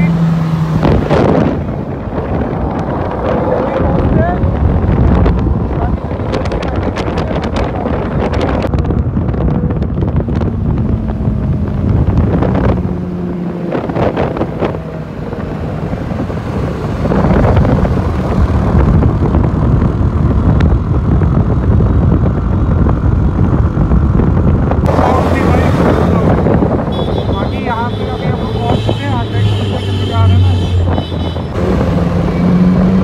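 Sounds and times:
motorcycle engines running: 0:00.0 - 0:33.0
wind buffeting on microphone: 0:00.3 - 0:33.0.

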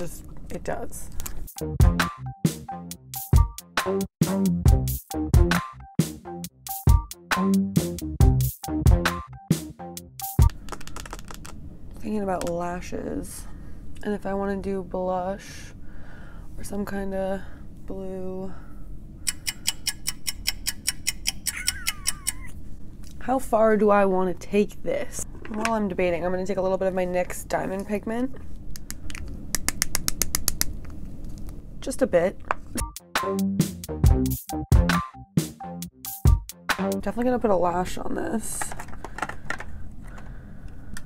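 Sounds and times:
electronic music with a beat: 0:01.5 - 0:10.5, 0:32.8 - 0:37.0
low room hum: 0:10.5 - 0:32.8.

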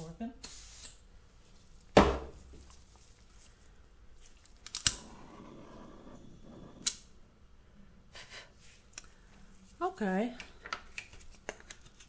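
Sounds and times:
faint hiss: 0:00.0 - 0:01.9.

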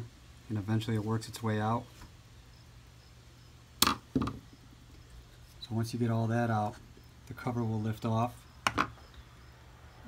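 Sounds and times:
faint steady hum: 0:00.0 - 0:10.0
knock on wooden workbench: 0:03.8 - 0:04.4.

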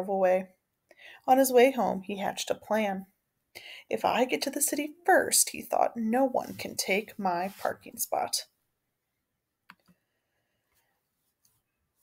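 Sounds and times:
computer mouse click: 0:09.7 - 0:10.0.

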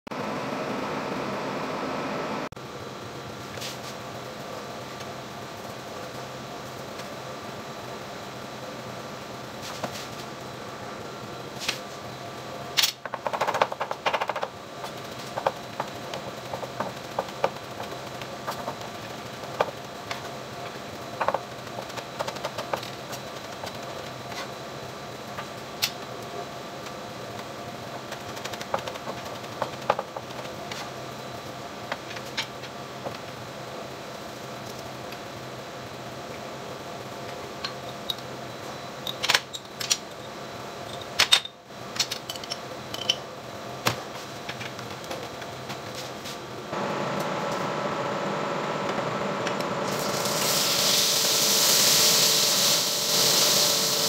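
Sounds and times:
ventilation fans humming: 0:00.1 - 0:54.0
fan humming: 0:42.7 - 0:54.0.

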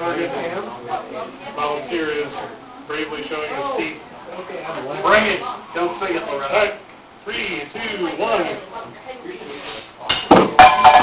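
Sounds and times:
ringing tone: 0:10.6 - 0:11.0.

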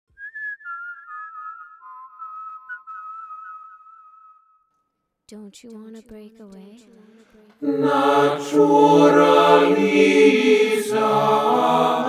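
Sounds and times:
whistled melody: 0:00.1 - 0:04.8.

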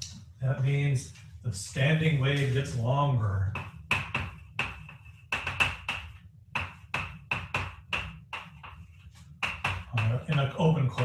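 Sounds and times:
chalk writing on blackboard: 0:03.5 - 0:11.0.

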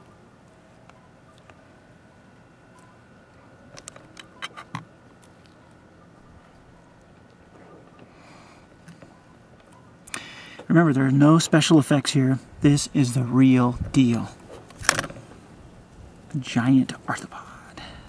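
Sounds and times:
faint room hum: 0:00.0 - 0:18.0.

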